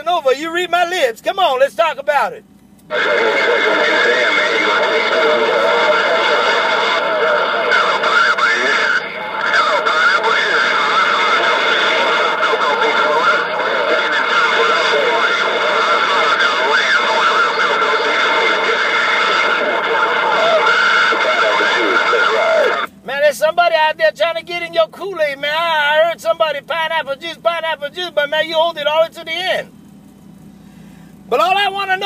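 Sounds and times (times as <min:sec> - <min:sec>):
radio static: 0:00.0 - 0:29.7, 0:31.3 - 0:32.0
voices talking over radio: 0:00.0 - 0:32.0.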